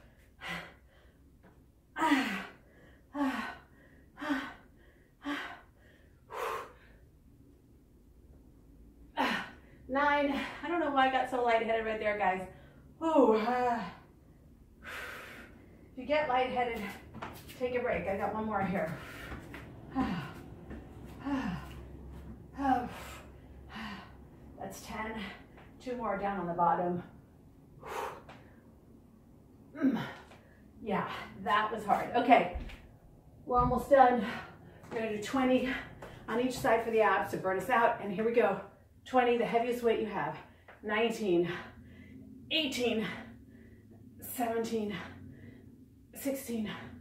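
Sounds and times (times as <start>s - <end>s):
woman breathing hard: 0.0s - 7.2s, 12.5s - 16.0s, 18.9s - 25.8s, 27.7s - 28.9s, 41.4s - 42.4s, 43.0s - 44.2s
woman gasping with exertion: 18.9s - 24.3s.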